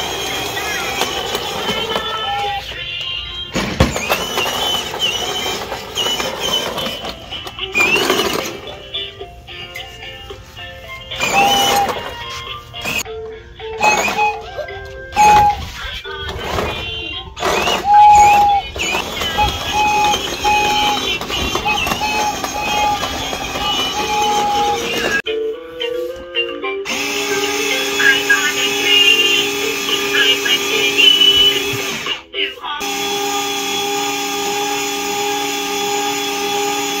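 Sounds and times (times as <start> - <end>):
small electric motor whirring: 0.0 - 2.6, 3.9 - 8.5, 11.2 - 12.2, 17.4 - 25.2, 26.9 - 32.2, 32.8 - 37.0
toy whistle blown: 0.0 - 2.6, 3.9 - 8.7, 11.1 - 12.2, 12.8 - 13.1, 13.7 - 15.8, 17.4 - 25.2, 26.9 - 32.2, 32.8 - 37.0.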